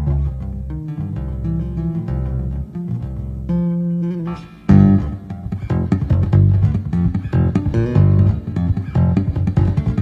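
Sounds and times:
electric bass guitar plucked notes: 0.0s - 10.0s.

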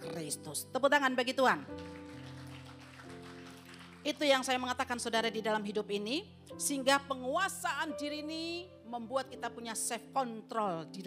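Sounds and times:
soft background music chords: 0.0s - 11.0s.

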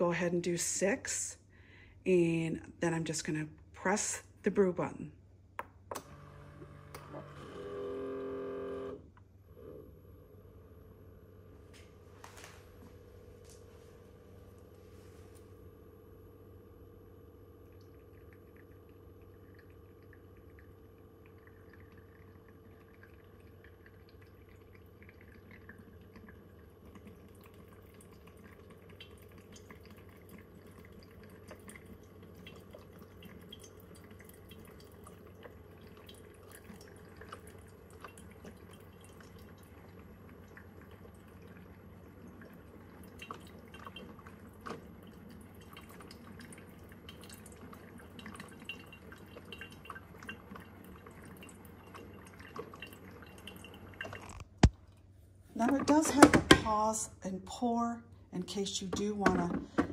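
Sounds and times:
coffee maker low hum: 5.6s - 59.9s
coffee dripping into carafe: 17.4s - 54.7s.

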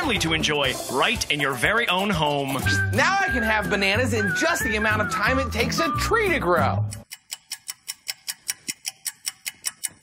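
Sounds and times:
clock ticking: 3.3s - 10.0s.

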